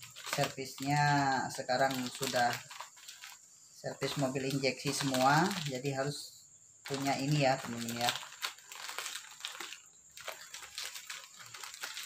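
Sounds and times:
plastic mailer bag crinkling: 0.0 - 6.1, 6.8 - 12.0.

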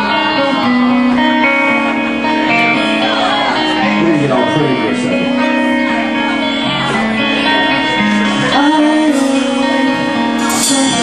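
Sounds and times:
live guitar chords: 0.0 - 11.0.

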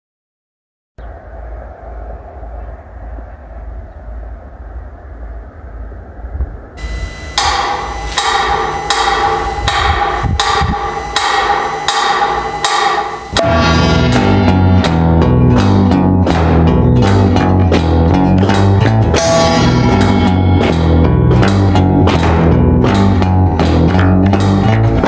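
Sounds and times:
steady low rumble: 1.1 - 19.1
metronome ticking: 6.8 - 13.4.

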